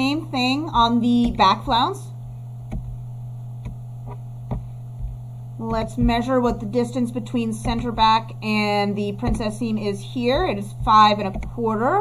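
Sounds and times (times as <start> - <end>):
low electrical hum: 0.0 - 12.0
computer mouse clicks: 11.2 - 11.6.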